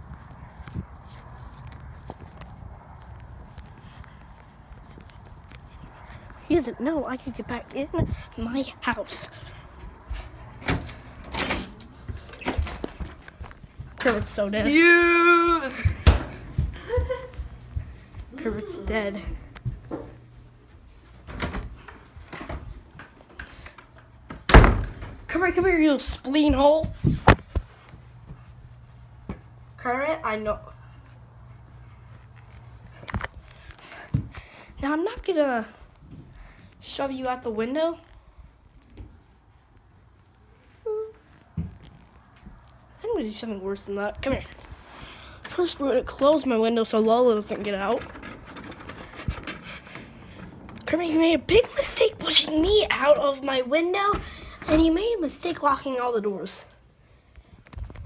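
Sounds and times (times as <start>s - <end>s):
person breathing: 33.4s - 34.8s, 35.8s - 36.8s, 44.7s - 45.5s, 54.2s - 54.6s.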